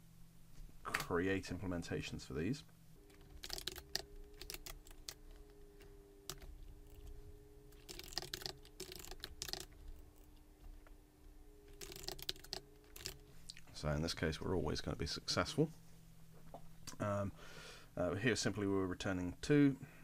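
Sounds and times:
faint steady hum: 0:00.0 - 0:20.0
keyboard keystroke clicks: 0:03.2 - 0:05.2, 0:06.3 - 0:07.1, 0:07.8 - 0:10.4.

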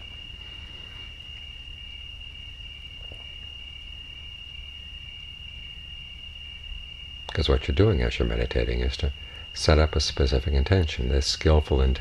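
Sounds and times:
crickets trilling: 0:00.0 - 0:12.0
low background rumble: 0:00.0 - 0:12.0.

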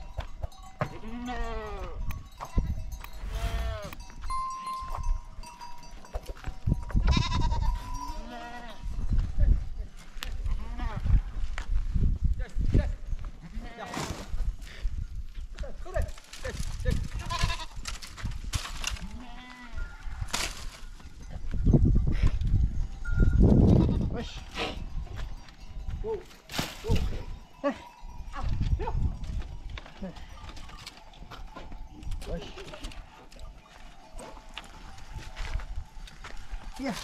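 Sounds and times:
goats bleating: 0:00.8 - 0:02.0, 0:07.0 - 0:08.8, 0:17.2 - 0:17.8, 0:19.0 - 0:19.8.

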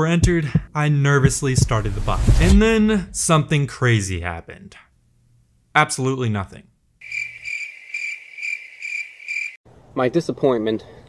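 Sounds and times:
crickets chirping: 0:07.0 - 0:09.6.

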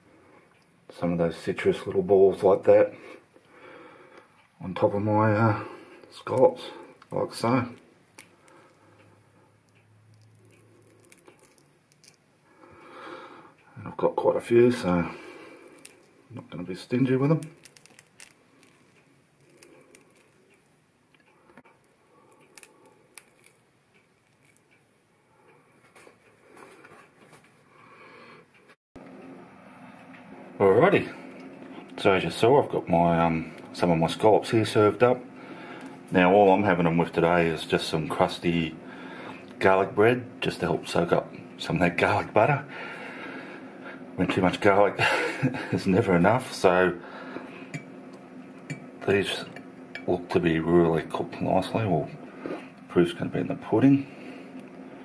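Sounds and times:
faint soft clicks and squishes: 0:06.0 - 0:12.5, 0:15.6 - 0:27.6.

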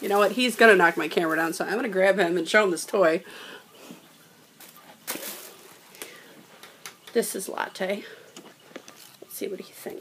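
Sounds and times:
rustling handling noise: 0:03.8 - 0:07.2, 0:08.3 - 0:09.9.

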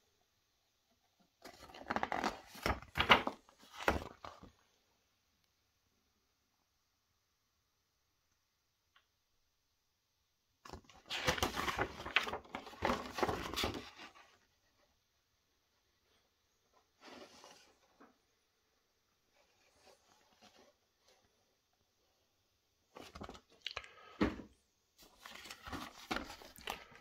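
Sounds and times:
paper rustling: 0:01.4 - 0:04.5, 0:10.6 - 0:14.4, 0:22.9 - 0:23.5, 0:25.0 - 0:27.0.

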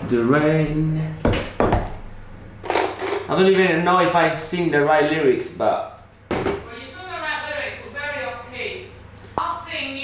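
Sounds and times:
hard object knocks: 0:01.2 - 0:02.0, 0:06.3 - 0:06.7.

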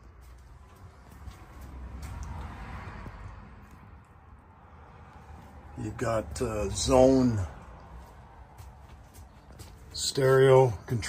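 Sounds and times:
footsteps on trailer floor: 0:00.1 - 0:03.2, 0:07.2 - 0:10.2.

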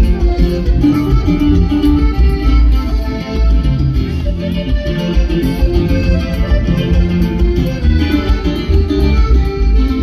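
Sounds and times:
live band music: 0:00.0 - 0:10.0
pulsing bass: 0:00.0 - 0:10.0.

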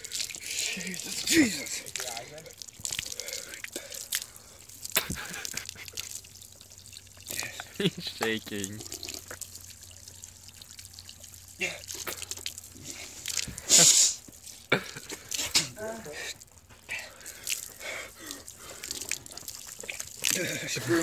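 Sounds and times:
water running from spigot: 0:00.0 - 0:21.0
water splashing on ground: 0:00.0 - 0:21.0
loud sharp hiss: 0:13.7 - 0:14.2.

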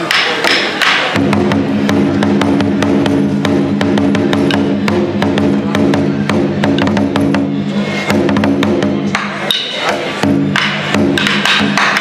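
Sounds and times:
barrel drum beaten with sticks: 0:00.0 - 0:12.0.

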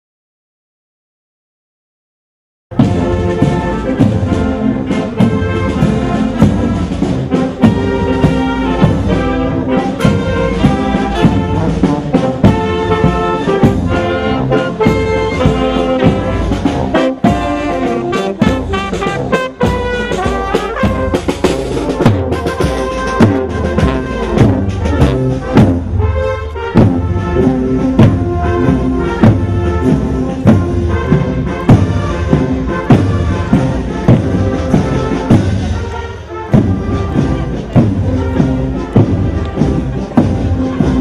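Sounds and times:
brass band music: 0:02.7 - 0:41.0
steady drum beat: 0:02.7 - 0:41.0.

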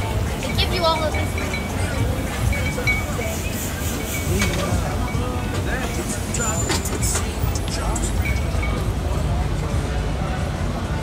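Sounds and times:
music: 0:00.0 - 0:11.0
people talking: 0:00.0 - 0:11.0
traffic rumble: 0:00.0 - 0:11.0.

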